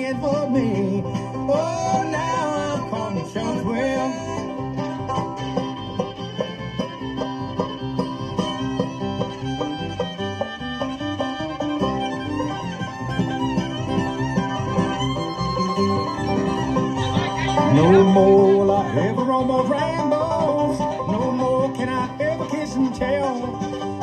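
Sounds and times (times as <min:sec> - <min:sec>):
acoustic guitar: 0:00.0 - 0:24.0
banjo: 0:00.0 - 0:24.0
bass guitar: 0:00.0 - 0:24.0
fiddle: 0:00.0 - 0:24.0.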